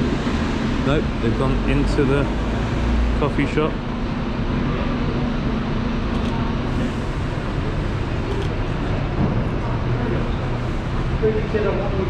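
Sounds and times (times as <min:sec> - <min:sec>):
traffic noise: 0:00.0 - 0:12.0.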